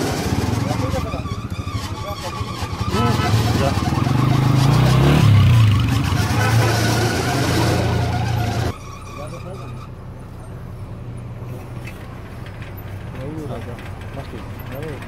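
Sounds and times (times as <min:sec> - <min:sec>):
motorcycle engine running: 0:00.0 - 0:08.7.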